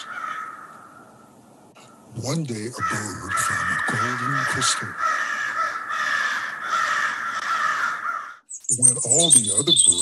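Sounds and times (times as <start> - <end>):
crows cawing: 0.0 - 2.1, 2.7 - 8.5.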